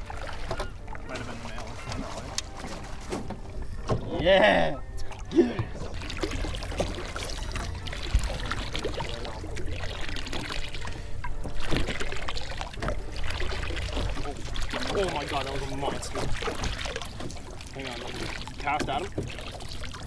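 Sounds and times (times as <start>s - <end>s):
waves lapping against boat hull: 0.0s - 20.0s
steady low rumble: 4.8s - 15.3s.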